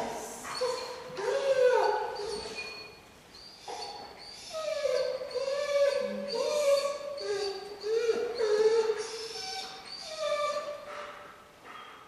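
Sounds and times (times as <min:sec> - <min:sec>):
puppy whining: 0:00.5 - 0:11.1.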